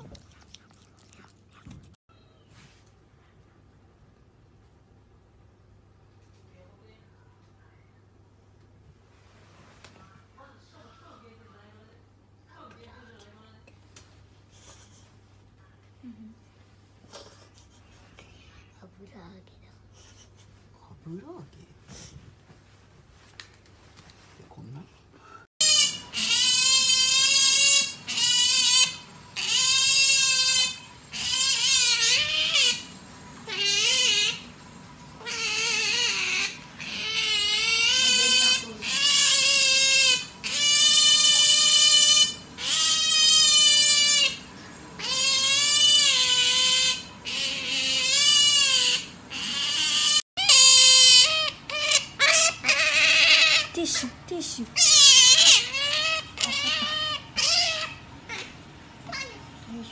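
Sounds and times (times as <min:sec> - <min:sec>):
otter squealing: 0:25.6 - 0:34.6, 0:35.2 - 0:59.9.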